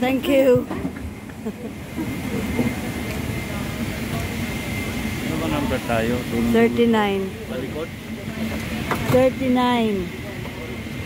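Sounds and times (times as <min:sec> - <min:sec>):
murmur of passengers' voices: 0:00.0 - 0:11.0.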